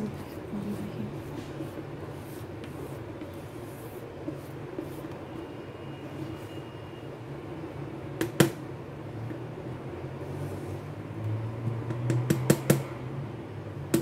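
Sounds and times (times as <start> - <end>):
low background hum: 0.0 - 14.0.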